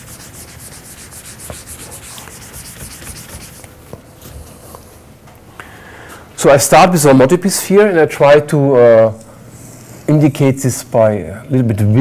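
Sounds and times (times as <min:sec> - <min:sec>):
eraser wiping whiteboard: 0:00.0 - 0:03.7.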